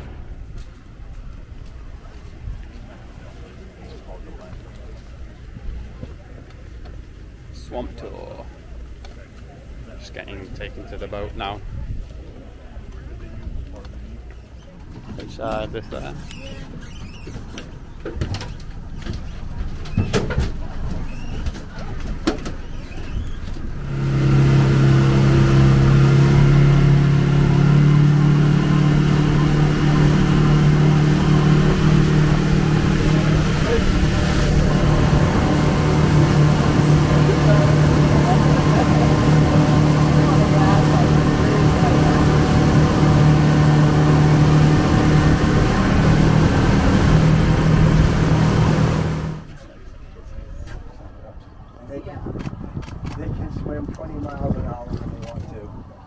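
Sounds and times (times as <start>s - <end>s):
boat engine droning: 0.0s - 20.0s, 20.6s - 50.2s
wind: 0.0s - 56.0s
water rushing: 23.6s - 49.4s.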